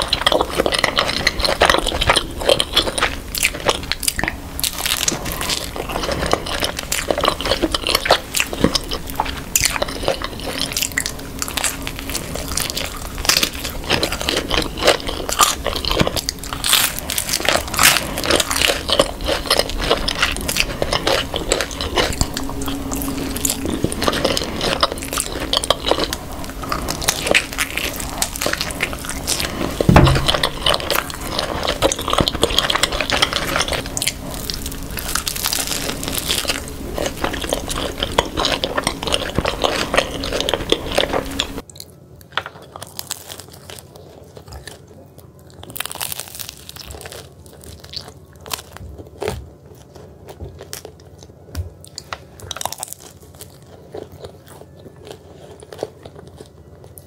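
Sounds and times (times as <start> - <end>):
people chewing pizza: 0.0 - 57.0
low thump: 29.9 - 30.5.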